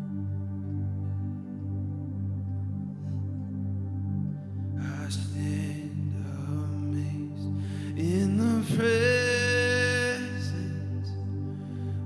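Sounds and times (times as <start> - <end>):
low keyboard pad: 0.0 - 12.0.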